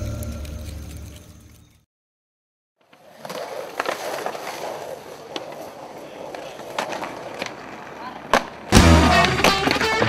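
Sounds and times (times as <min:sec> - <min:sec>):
skateboard sharp clacks: 0:02.8 - 0:10.0
skateboard wheels rolling: 0:02.8 - 0:10.0.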